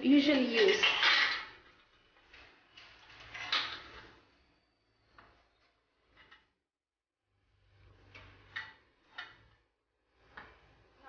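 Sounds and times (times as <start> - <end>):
metal plates clinking and scraping: 0.2 - 4.3.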